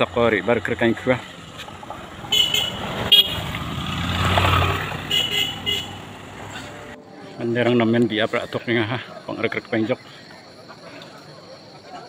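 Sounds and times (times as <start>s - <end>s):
motorcycle passing by: 0.0s - 7.0s.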